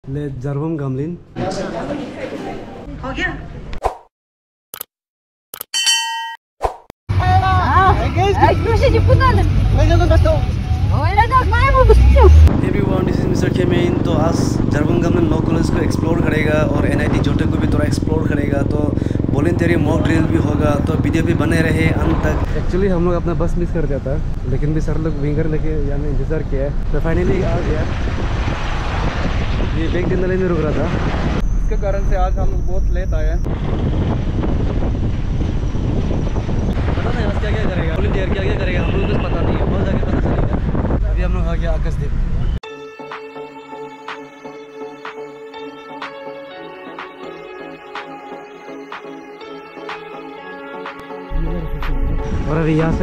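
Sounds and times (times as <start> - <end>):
bright bell-like ding: 5.8 - 6.4
road and engine noise in a van: 7.1 - 12.6, 40.3 - 42.6
voices: 7.1 - 22.9
vehicle engine rumble: 7.1 - 38.8, 51.3 - 53.0.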